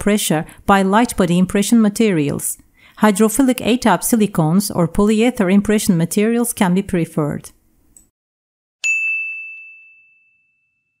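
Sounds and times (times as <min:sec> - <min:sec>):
bright bell-like ding: 0:08.8 - 0:11.0.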